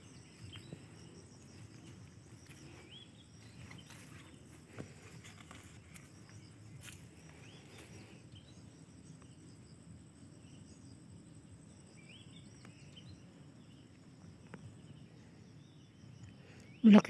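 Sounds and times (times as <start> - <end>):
high insect drone: 0.0 - 17.0.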